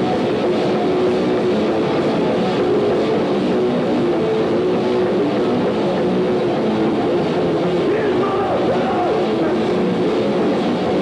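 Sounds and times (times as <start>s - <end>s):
bass guitar: 0.0s - 11.0s
distorted electric guitar: 0.0s - 11.0s.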